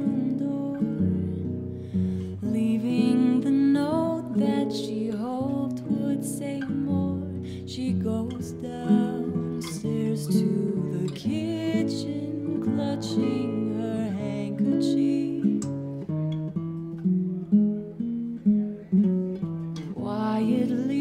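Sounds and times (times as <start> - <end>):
woman singing: 0.0 - 16.0, 19.8 - 21.0
acoustic guitar picking: 0.0 - 21.0.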